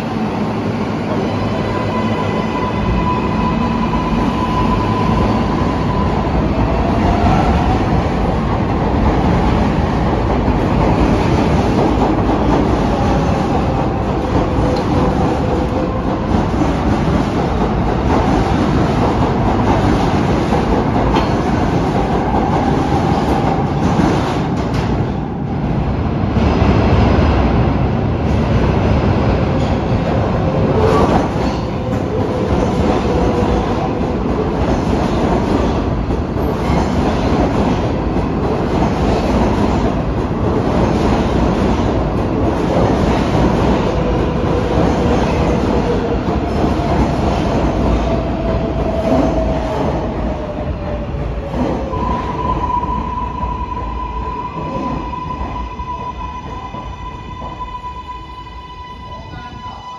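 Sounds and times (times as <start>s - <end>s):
subway train rumbling past: 0.0s - 59.9s.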